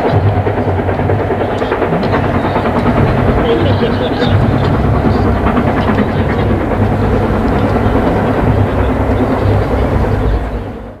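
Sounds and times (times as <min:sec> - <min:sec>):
wheels clicking over rail joints: 0:00.0 - 0:10.7
steam train passing at speed: 0:00.0 - 0:11.0.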